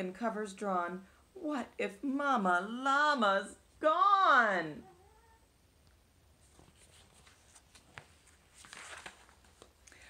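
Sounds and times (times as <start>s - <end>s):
book page turning: 6.4s - 10.0s.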